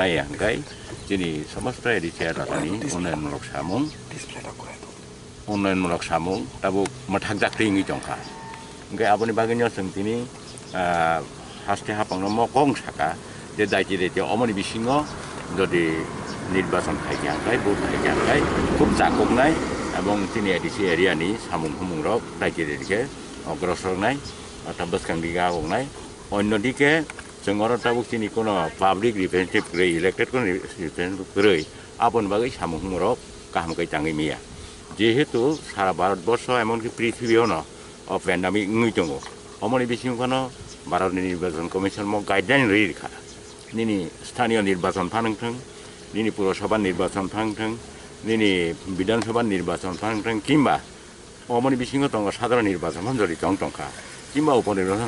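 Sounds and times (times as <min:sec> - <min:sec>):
man speaking: 0:00.0 - 0:50.9, 0:51.5 - 0:55.0.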